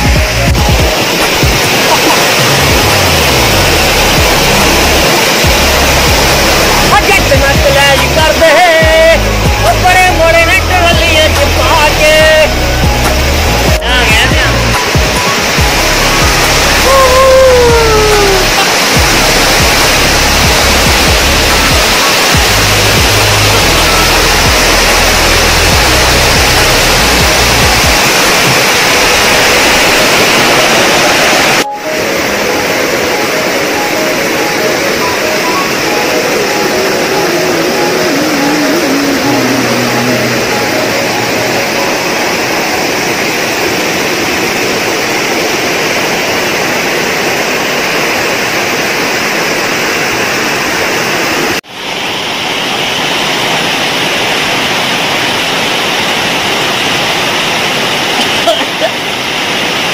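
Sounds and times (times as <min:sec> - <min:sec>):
waterfall crashing into pool: 0:00.0 - 0:59.9.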